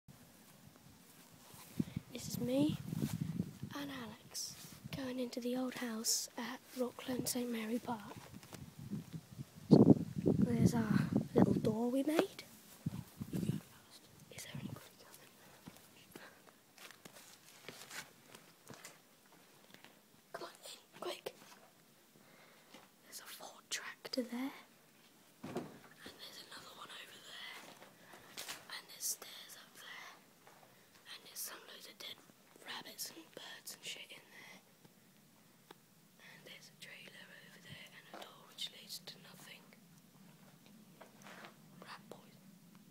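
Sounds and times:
faint whispering voices: 0:01.7 - 0:08.4, 0:09.7 - 0:16.5, 0:20.3 - 0:21.6, 0:23.0 - 0:24.8, 0:25.9 - 0:27.8, 0:28.5 - 0:30.2, 0:31.0 - 0:34.7, 0:36.2 - 0:39.8, 0:41.7 - 0:42.5
footsteps on grass and dusty floor: 0:02.6 - 0:03.7, 0:06.6 - 0:08.7, 0:12.2 - 0:13.7, 0:15.2 - 0:19.6.

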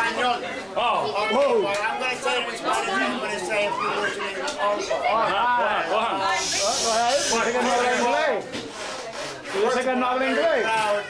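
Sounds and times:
people talking: 0:00.0 - 0:11.0
drawn-out hiss: 0:06.3 - 0:08.1.

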